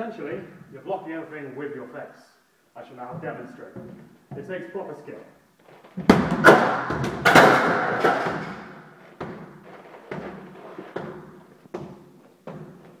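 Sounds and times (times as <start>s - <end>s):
exercise ball crashing: 6.0s - 11.4s.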